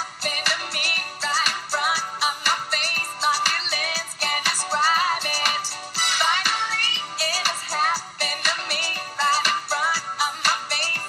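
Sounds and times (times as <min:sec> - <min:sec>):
person singing: 0:00.0 - 0:11.0
pop song: 0:00.0 - 0:11.0.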